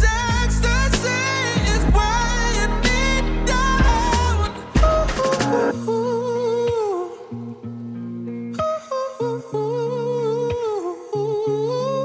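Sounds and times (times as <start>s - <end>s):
deep bass and drums: 0.0s - 5.7s
man singing pop song: 0.0s - 7.7s, 8.5s - 12.0s.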